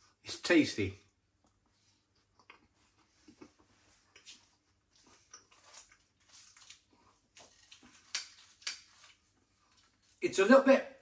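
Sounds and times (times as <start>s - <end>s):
chewing pastry: 1.1s - 10.2s.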